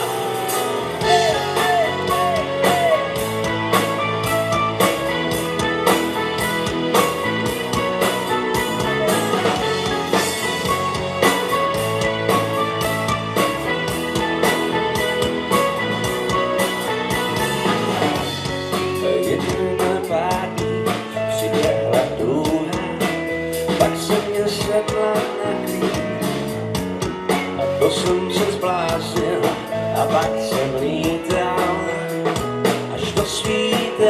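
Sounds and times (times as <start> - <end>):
bass guitar: 0.0 - 34.0
drum kit: 0.0 - 34.0
electric guitars: 0.0 - 34.0.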